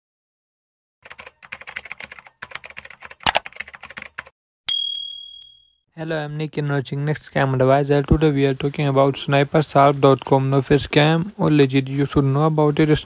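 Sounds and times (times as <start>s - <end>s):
keyboard typing clicks: 1.1s - 4.3s
bell-like ding: 4.7s - 5.8s.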